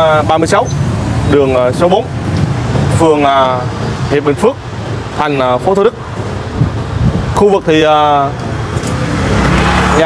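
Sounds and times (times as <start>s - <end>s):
motor scooter engines running: 0.0s - 10.0s
road noise: 0.0s - 10.0s.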